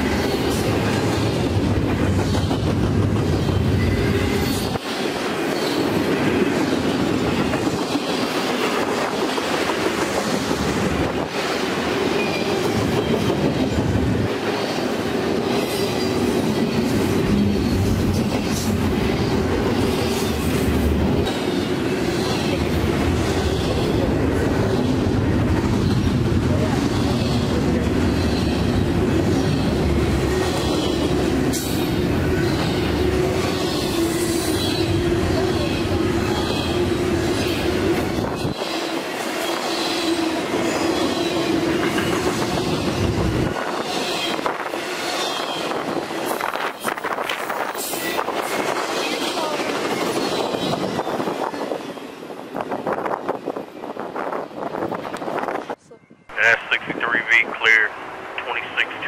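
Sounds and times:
train rumbling and rattling: 0:00.0 - 0:59.0.

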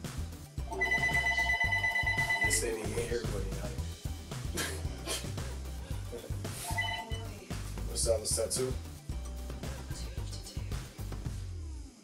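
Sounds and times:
music with heavy bass beat: 0:00.0 - 0:12.0
telephone ringing: 0:00.7 - 0:02.9, 0:06.6 - 0:07.3.

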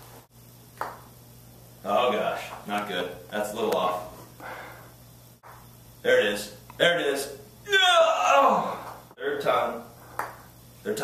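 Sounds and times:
putter tapping golf ball: 0:00.8 - 0:01.0.

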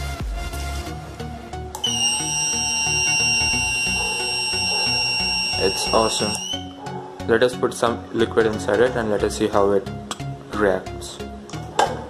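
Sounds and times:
background music: 0:00.0 - 0:12.0
small motor whine: 0:01.9 - 0:06.6.

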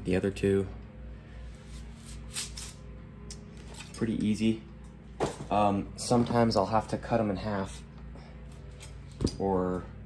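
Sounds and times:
low steady hum: 0:00.0 - 0:10.0
wire scraping through insulation: 0:01.6 - 0:02.8.

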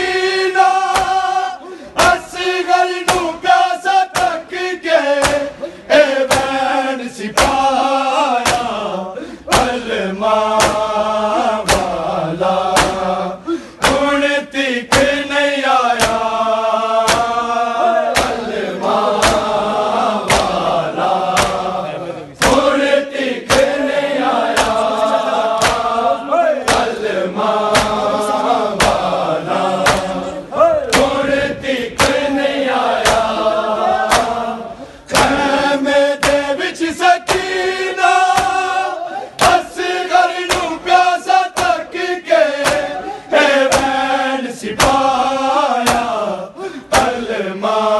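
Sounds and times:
men chanting a lament: 0:00.0 - 0:47.9
hands slapping bare chests: 0:00.7 - 0:01.4, 0:02.0 - 0:02.4, 0:03.0 - 0:06.6, 0:07.3 - 0:08.9, 0:09.5 - 0:09.8, 0:10.4 - 0:13.2, 0:13.8 - 0:14.2, 0:14.9 - 0:15.3, 0:15.9 - 0:16.4, 0:17.0 - 0:21.8, 0:22.4 - 0:22.8, 0:23.4 - 0:30.3, 0:30.9 - 0:31.2, 0:31.9 - 0:33.4, 0:34.0 - 0:34.5, 0:35.1 - 0:37.6, 0:38.2 - 0:38.8, 0:39.4 - 0:44.1, 0:44.8 - 0:46.3, 0:46.9 - 0:47.3.

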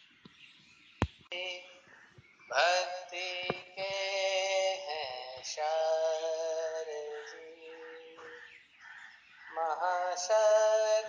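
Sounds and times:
solo voice singing devotional song: 0:01.3 - 0:01.9, 0:02.5 - 0:08.4, 0:09.4 - 0:11.0.

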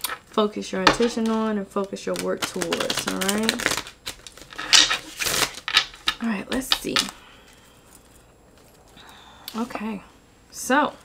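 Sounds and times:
cards rustling: 0:01.0 - 0:08.9.

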